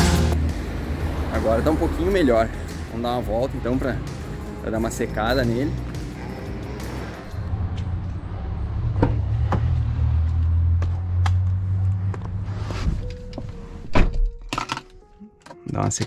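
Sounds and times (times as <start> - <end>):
background music with low bass: 0.0 - 7.4
car door shutting: 12.7 - 14.4.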